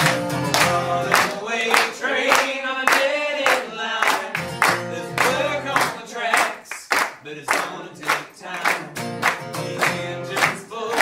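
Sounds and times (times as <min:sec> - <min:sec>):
acoustic guitar: 0:00.0 - 0:11.0
audience clapping along: 0:00.0 - 0:11.0
person singing: 0:00.0 - 0:11.0.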